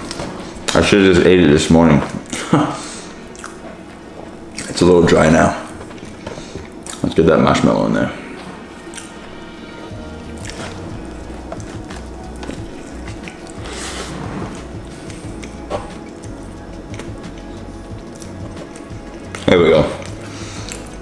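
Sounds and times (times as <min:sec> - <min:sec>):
lip smacks: 0:03.3 - 0:03.6, 0:06.0 - 0:07.1, 0:10.4 - 0:10.9, 0:11.5 - 0:21.0
person chewing wetly: 0:03.3 - 0:03.7, 0:05.7 - 0:07.2, 0:08.8 - 0:09.2, 0:10.2 - 0:21.0
background music with low beat: 0:08.3 - 0:21.0.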